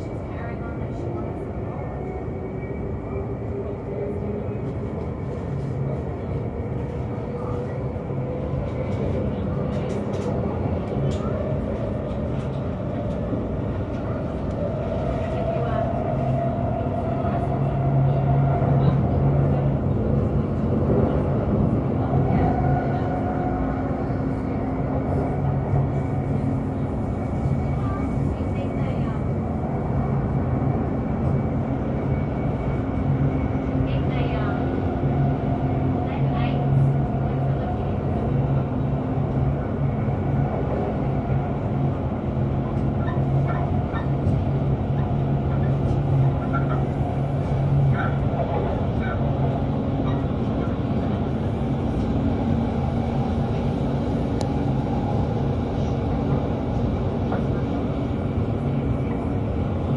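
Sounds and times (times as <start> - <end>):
electric train running hum: 0.0 - 59.9.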